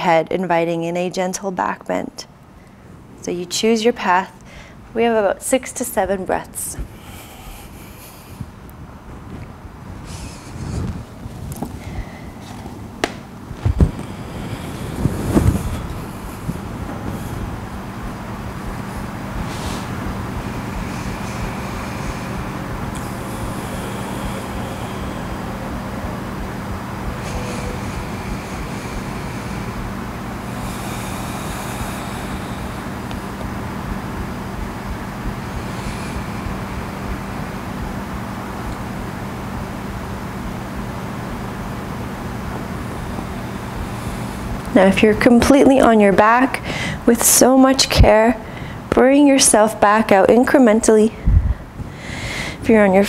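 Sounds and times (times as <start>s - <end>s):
low background hum: 0.0s - 53.0s
thumps and rustles on yoga mat: 12.4s - 14.2s.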